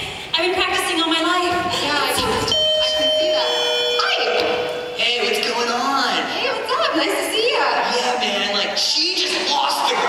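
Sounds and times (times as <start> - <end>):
voices: 0.4 - 10.0
two-note doorbell chime: 2.5 - 5.0.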